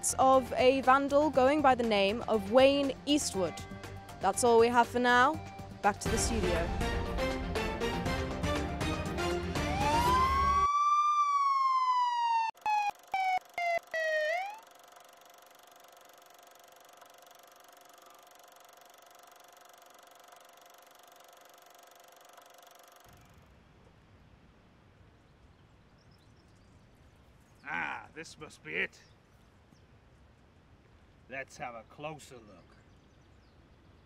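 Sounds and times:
stuttering pitch-sliding tone: 0:12.4 - 0:23.2.

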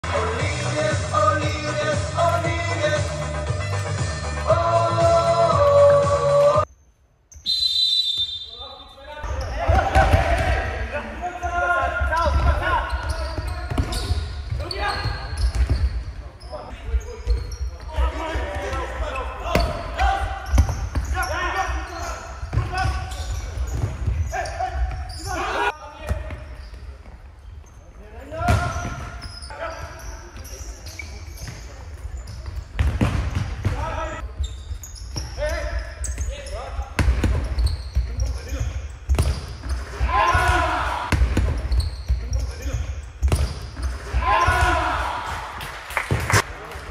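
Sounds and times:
short whistle blast: 0:07.3 - 0:08.6
players shouting: 0:09.2 - 0:13.4, 0:39.9 - 0:41.2, 0:44.0 - 0:45.7
players calling out: 0:09.2 - 0:25.8, 0:34.9 - 0:46.4.

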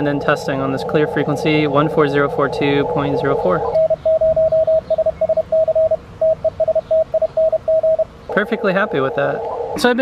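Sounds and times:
morse code beeps: 0:00.0 - 0:09.9.

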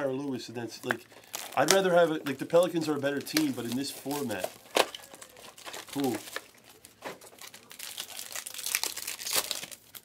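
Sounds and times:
foil wrapper crinkling: 0:00.8 - 0:10.0.

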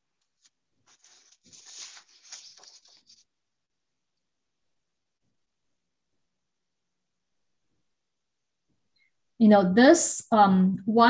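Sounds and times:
brush dragging across paper: 0:00.4 - 0:03.3.

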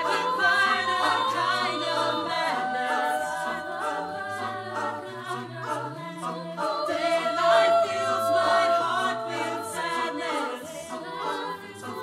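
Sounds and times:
a cappella choir singing: 0:00.0 - 0:12.0.

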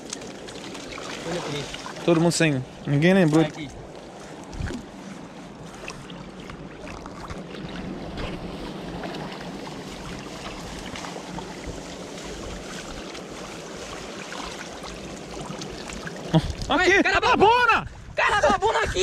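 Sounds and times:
water sloshing and splashing: 0:00.0 - 0:16.8.

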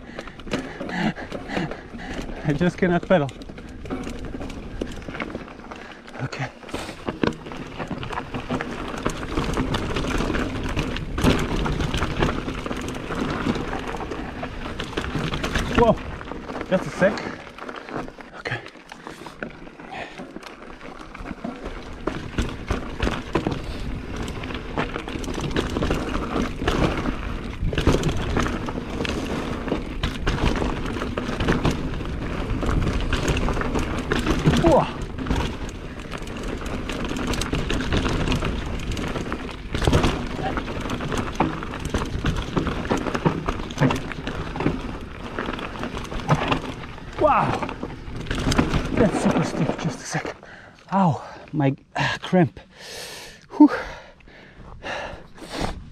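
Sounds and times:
bike rattling and clicking: 0:00.0 - 0:55.9
bike tyres on dirt: 0:00.0 - 0:55.9.

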